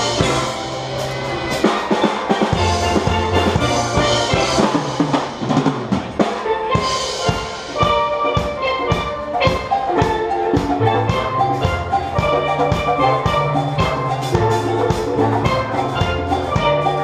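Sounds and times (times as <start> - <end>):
steel band playing: 0.0 - 17.0.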